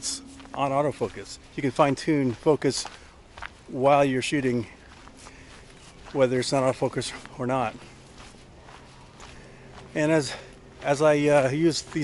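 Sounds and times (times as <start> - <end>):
faint outdoor background noise: 0.0 - 12.0
soft footsteps on dirt path: 0.0 - 12.0.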